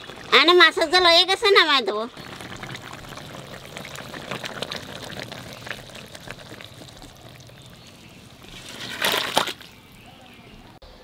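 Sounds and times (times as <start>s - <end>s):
curry bubbling and crackling: 0.0s - 10.7s.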